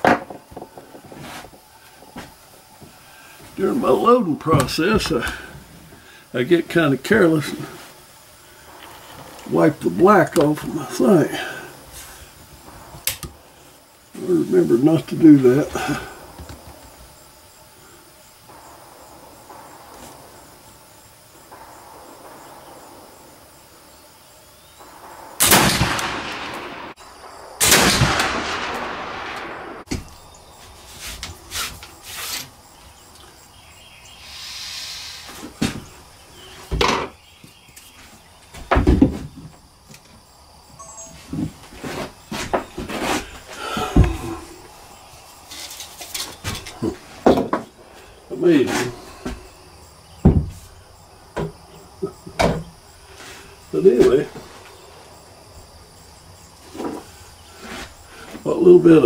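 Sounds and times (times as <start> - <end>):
rifle shots: 24.8 - 29.9.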